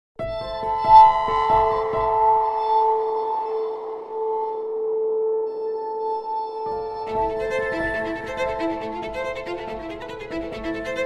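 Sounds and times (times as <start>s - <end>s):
music with long held notes: 0.2s - 11.0s.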